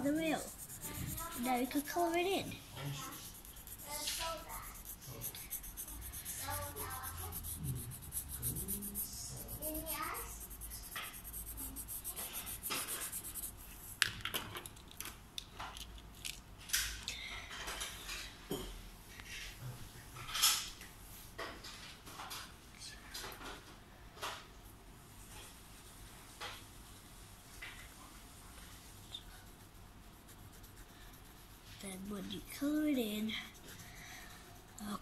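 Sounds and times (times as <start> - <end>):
pencil scratching on paper: 0.0 - 14.0, 28.5 - 35.0.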